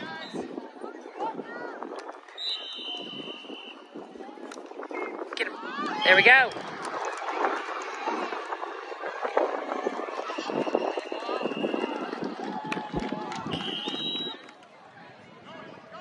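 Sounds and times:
shouts and chatter of people: 0.0 - 16.0.

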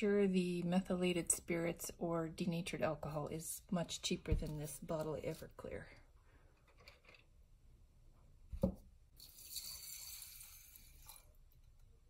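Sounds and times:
liquid pouring into glass jar: 9.2 - 11.4.

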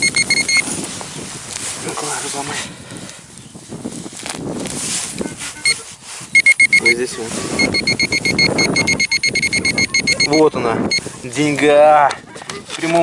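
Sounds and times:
metal detector beeping rapidly: 0.0 - 0.7, 5.6 - 11.1.

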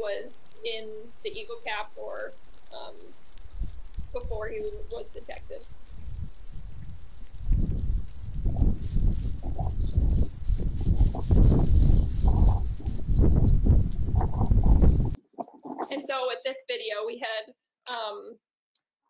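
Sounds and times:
animal scratching and digging snow: 2.3 - 16.0.

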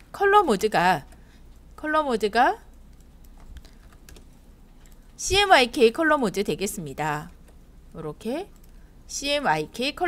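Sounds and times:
keyboard keys clicking: 2.7 - 5.1.

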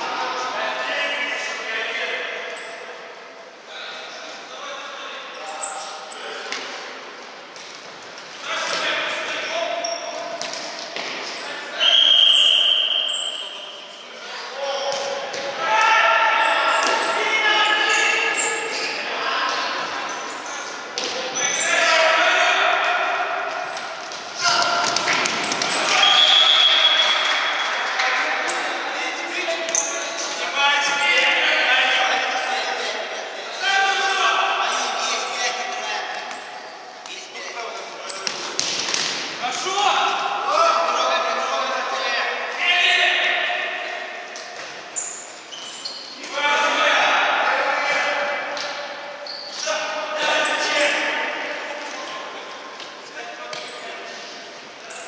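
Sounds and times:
players shouting: 8.4 - 37.0
referee whistle blasts: 11.8 - 14.0, 25.9 - 27.7.

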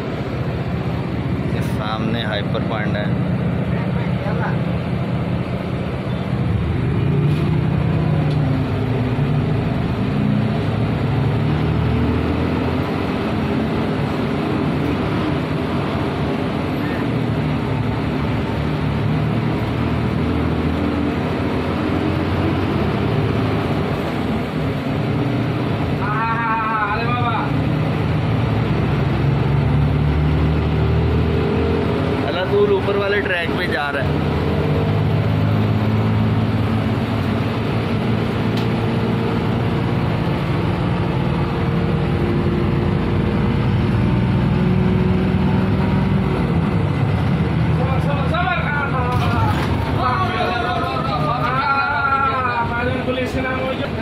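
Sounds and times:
minibus engine drone inside cabin: 0.0 - 54.0
road noise: 0.0 - 54.0.

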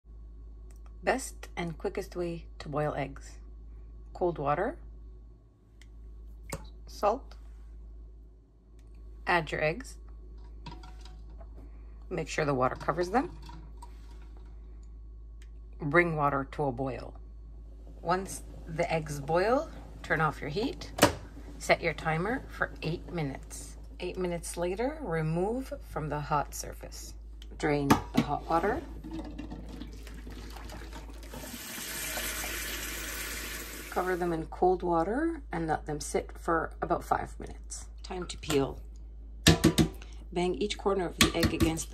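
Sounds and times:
water poured into steel sink: 29.1 - 34.1.

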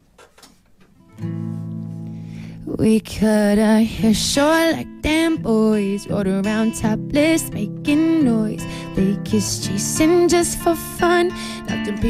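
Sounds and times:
acoustic guitar chord strummed: 1.0 - 12.0.

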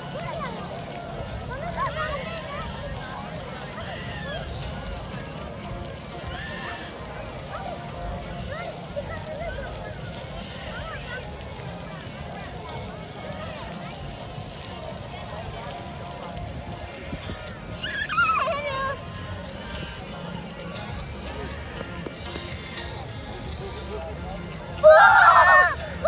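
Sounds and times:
faint voices: 0.0 - 26.0
child crying out: 17.8 - 18.8, 24.8 - 25.8.

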